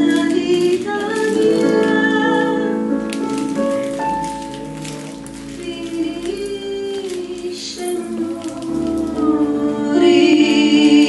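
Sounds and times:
soft piano chords: 0:00.0 - 0:11.0.

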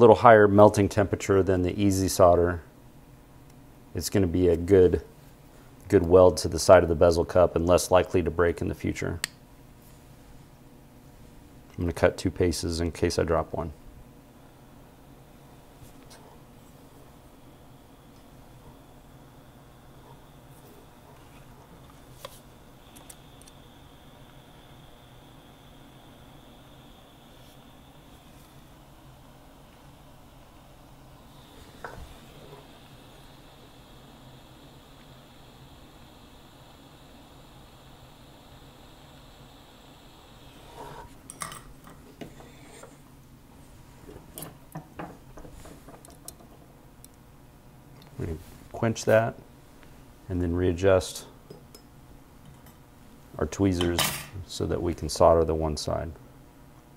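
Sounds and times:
faint background hiss: 0:00.0 - 0:56.9.

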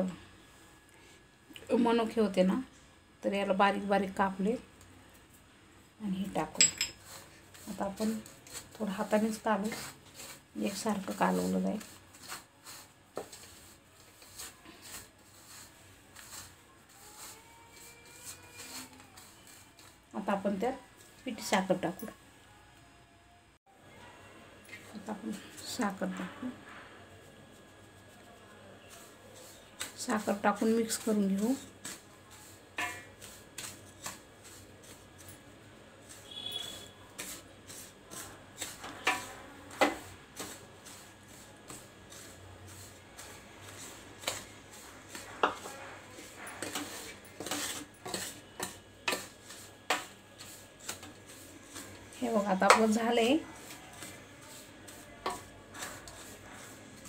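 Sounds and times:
hand mixing dry crumbs in bowl: 0:06.2 - 0:22.0, 0:27.2 - 0:57.0
powdered sugar pouring: 0:07.1 - 0:20.0.

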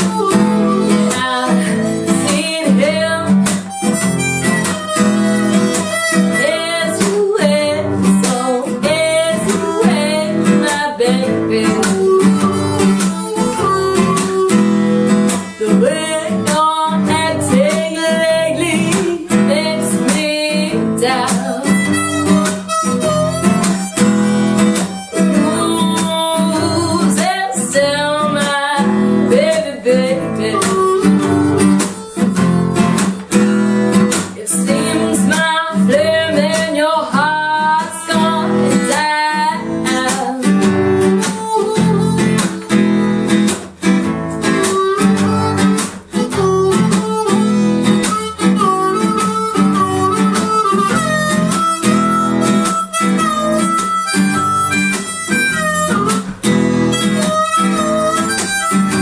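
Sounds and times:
blues harmonica melody: 0:00.0 - 0:59.0
strummed acoustic guitar: 0:00.0 - 0:59.0.

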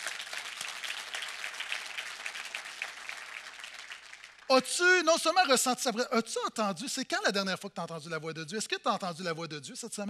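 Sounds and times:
crowd applauding: 0:00.0 - 0:04.5.

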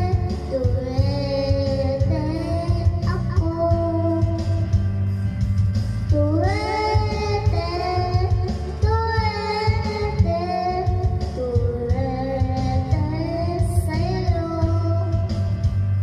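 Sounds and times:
child singing through microphone: 0:00.0 - 0:04.9, 0:06.1 - 0:15.9
karaoke backing track: 0:00.0 - 0:16.0.

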